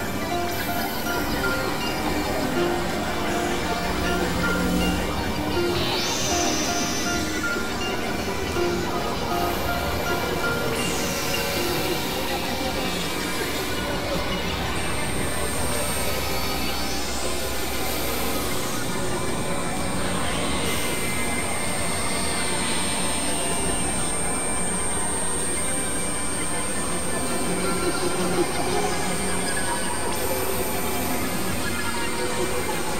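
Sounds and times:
thin high tone: 0.0s - 15.0s
noisy synthesizer drone: 0.0s - 32.9s.

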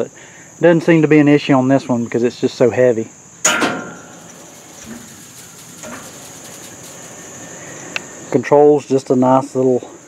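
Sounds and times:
crickets chirring: 0.0s - 10.0s
low rustling handling noise: 3.5s - 8.1s.

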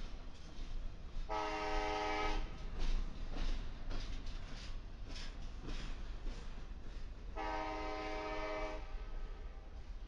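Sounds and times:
train rumbling past: 0.0s - 10.0s
train air horn chord: 1.3s - 2.4s, 7.4s - 9.1s.

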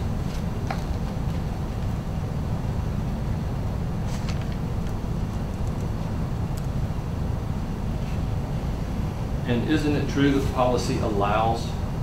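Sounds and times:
air conditioning rumble: 0.0s - 12.0s.

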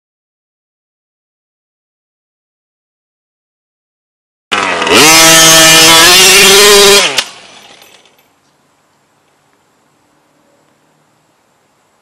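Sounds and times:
two-stroke engine revving: 4.5s - 8.0s.

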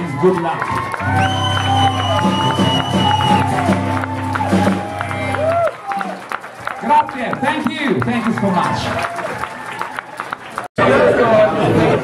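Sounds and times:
bar crowd chatter: 10.2s - 12.0s.

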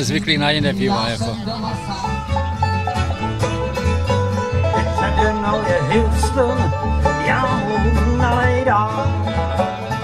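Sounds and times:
acoustic guitar: 0.0s - 10.0s
banjo picking: 0.0s - 10.0s
fiddle: 0.0s - 10.0s
upright bass plucking: 0.0s - 10.0s.

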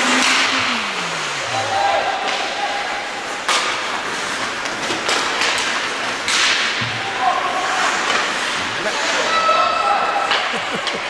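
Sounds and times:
skates scraping ice: 0.0s - 11.0s
sticks clacking on puck: 3.4s - 7.0s, 7.7s - 8.6s.

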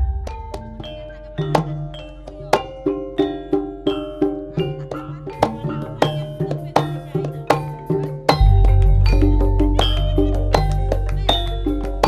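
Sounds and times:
gamelan music: 0.0s - 12.0s.

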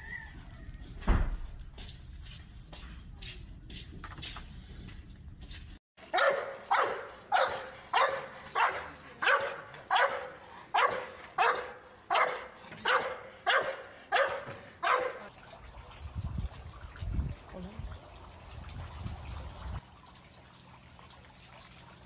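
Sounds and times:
dog barking: 6.1s - 15.3s.

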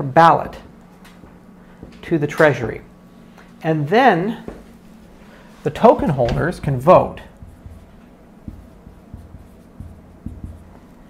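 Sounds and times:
marker writing on whiteboard: 7.1s - 11.0s.

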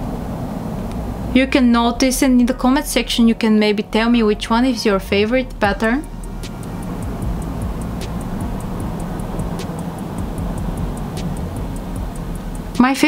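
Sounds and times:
background music with ticking beat: 2.2s - 13.0s.

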